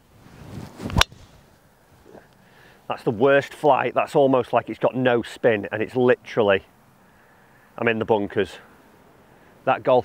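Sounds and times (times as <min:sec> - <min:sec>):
faint outdoor background: 0:00.0 - 0:10.0
golf club swish: 0:00.3 - 0:01.5
golf ball struck crack: 0:00.9 - 0:01.3.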